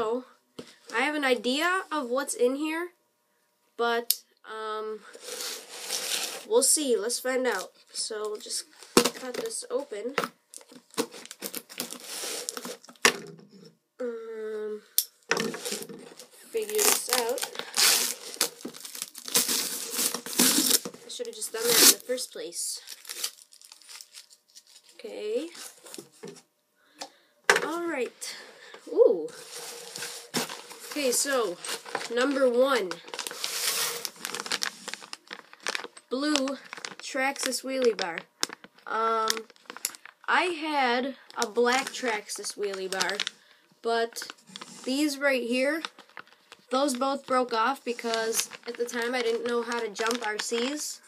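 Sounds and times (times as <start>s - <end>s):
plastic packaging rustling: 5.0s - 6.7s, 7.4s - 13.6s, 15.3s - 26.4s, 29.3s - 40.4s, 41.2s - 51.0s
tape tearing: 5.1s - 6.5s, 10.6s - 13.2s, 15.4s - 22.2s, 22.8s - 25.0s, 29.4s - 38.7s
person humming: 28.9s - 29.4s.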